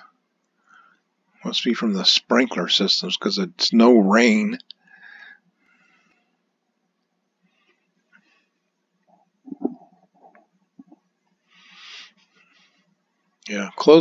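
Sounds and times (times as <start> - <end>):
soft breath: 0.6 - 1.1, 4.8 - 6.5, 11.4 - 13.0
man speaking: 1.4 - 4.7, 13.5 - 14.0
faint mouth sounds: 9.1 - 11.0.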